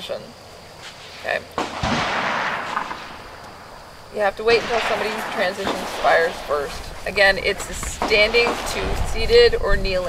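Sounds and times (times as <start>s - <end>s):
gunshot with echo: 1.6s - 3.8s, 4.5s - 6.9s.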